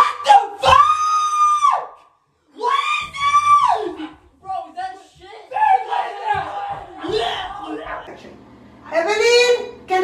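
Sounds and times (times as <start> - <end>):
woman screaming: 2.6 - 4.2.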